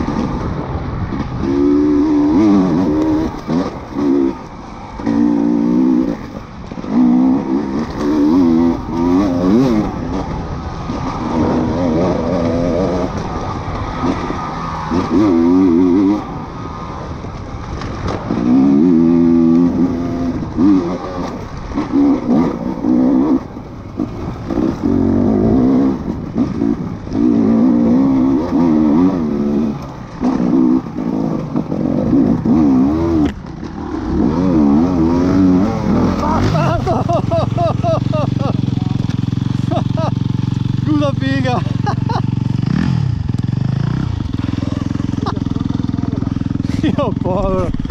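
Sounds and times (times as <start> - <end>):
motorcycle engine revving and idling: 0.0 - 47.9.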